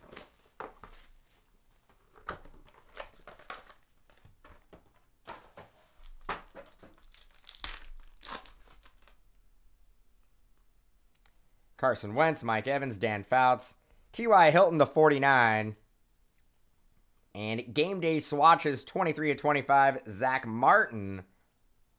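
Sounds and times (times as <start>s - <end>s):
foil wrapper crinkling and tearing: 0.0s - 9.3s.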